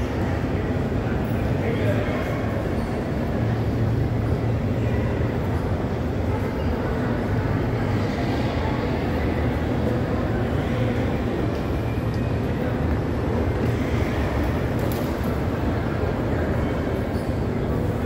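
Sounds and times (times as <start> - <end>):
murmur of shoppers' voices: 0.0 - 18.0.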